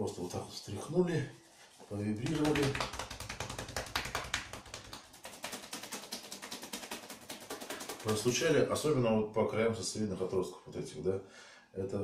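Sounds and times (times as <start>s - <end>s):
rapid hand taps on a body: 2.2s - 8.4s.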